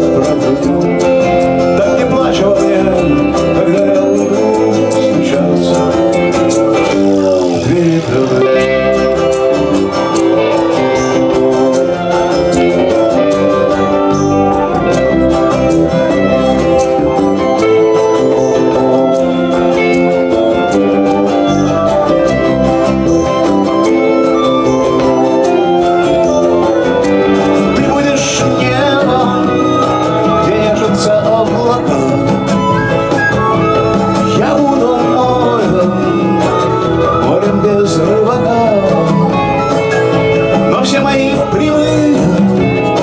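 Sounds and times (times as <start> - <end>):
acoustic guitars strumming: 0.0 - 43.0
flute melody: 0.0 - 43.0
violin melody: 0.8 - 43.0.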